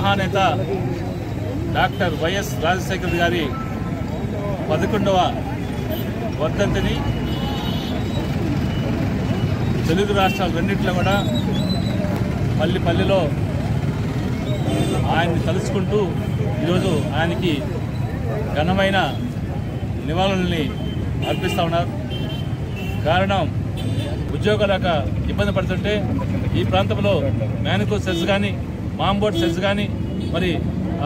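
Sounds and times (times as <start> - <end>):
road traffic rumble: 0.0 - 31.0
man speaking into microphones: 20.0 - 22.0.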